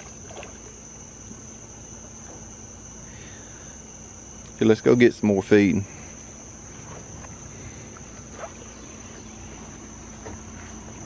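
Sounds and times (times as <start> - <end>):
shrill insect chorus: 0.0 - 11.0.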